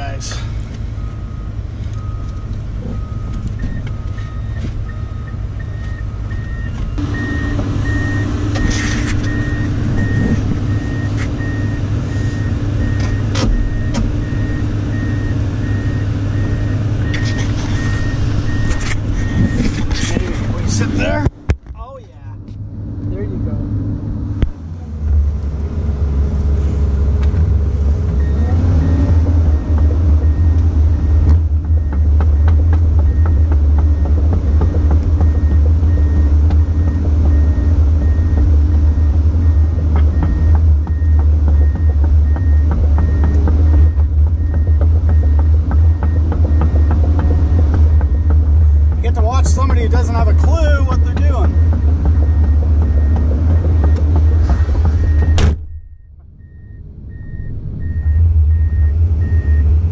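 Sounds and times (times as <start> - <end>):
excavator diesel engine droning: 0.0 - 21.5, 22.2 - 59.9
faint alarm beeps: 53.8 - 59.6.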